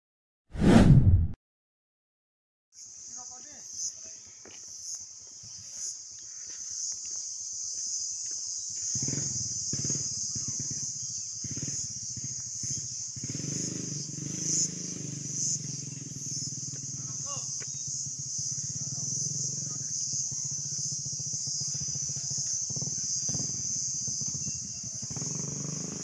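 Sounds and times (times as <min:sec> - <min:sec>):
low rumble: 0:00.6 - 0:01.4
high-pitched insect chorus: 0:02.8 - 0:26.0.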